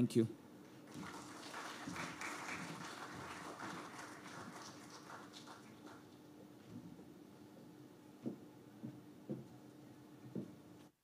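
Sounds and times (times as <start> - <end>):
faint audience applause: 0.8 - 6.3.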